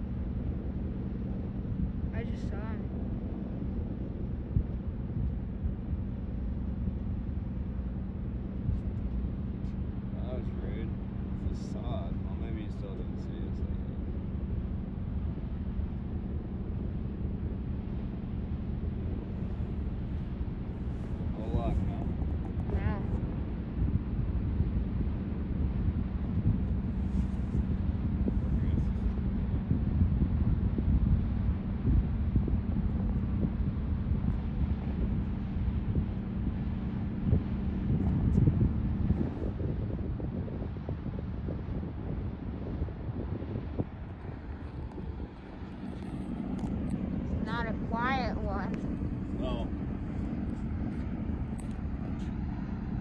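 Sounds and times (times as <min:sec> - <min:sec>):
wind on microphone: 0:00.0 - 0:53.0.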